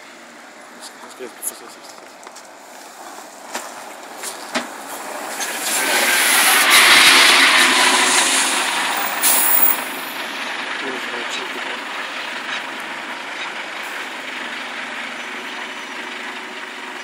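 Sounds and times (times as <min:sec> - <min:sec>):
bus driving past: 0:00.0 - 0:17.0.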